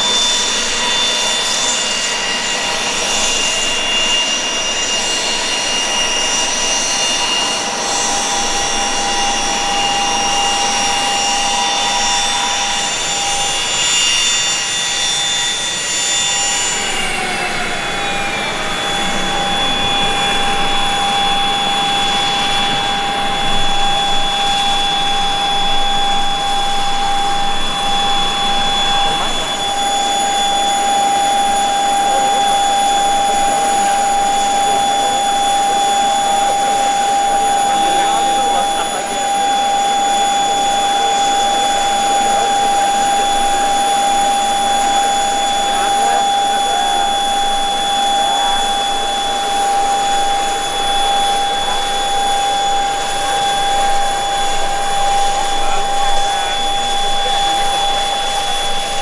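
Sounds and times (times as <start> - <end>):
jet engine whine: 0.0 - 59.0.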